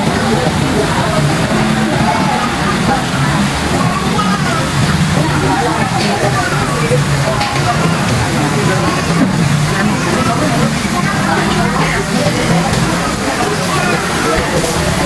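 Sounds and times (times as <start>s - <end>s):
restaurant chatter: 0.0s - 15.0s.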